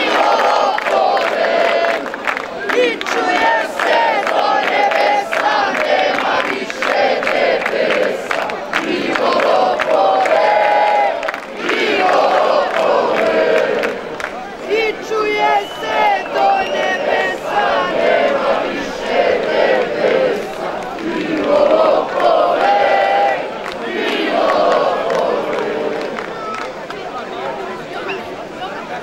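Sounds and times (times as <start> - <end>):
crowd shouting and chanting: 0.0 - 29.0.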